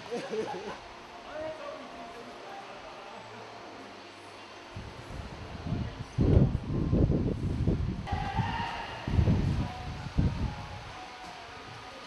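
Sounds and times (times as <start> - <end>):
wind buffeting microphone: 4.8 - 10.9.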